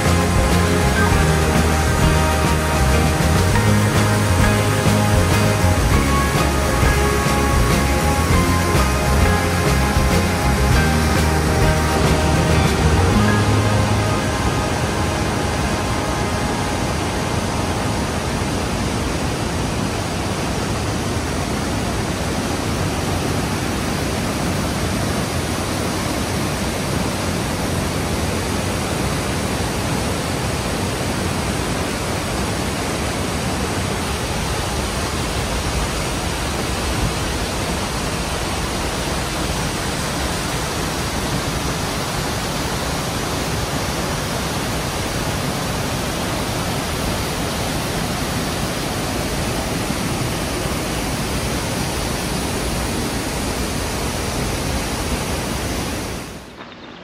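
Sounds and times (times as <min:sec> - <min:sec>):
white water rushing: 0:00.0 - 0:57.0.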